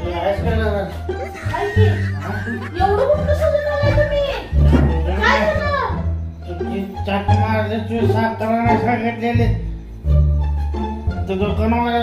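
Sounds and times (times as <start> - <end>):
background music with low bass: 0.0 - 12.0
voices speaking: 1.0 - 8.2.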